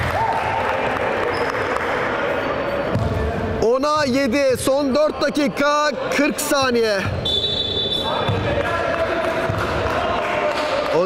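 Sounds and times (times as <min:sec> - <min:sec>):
players' voices: 0:01.2 - 0:11.0.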